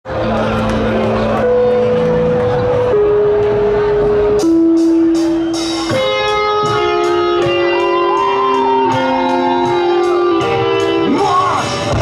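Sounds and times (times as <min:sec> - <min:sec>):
crowd noise: 0:00.0 - 0:12.0
live rock band playing loud: 0:00.1 - 0:12.0.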